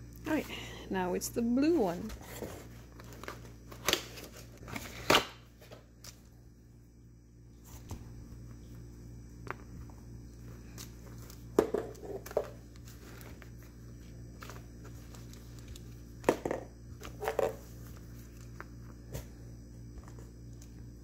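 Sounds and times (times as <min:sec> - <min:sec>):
rustling and rubbing of journal: 0:07.6 - 0:08.9, 0:09.5 - 0:16.2, 0:17.0 - 0:19.1.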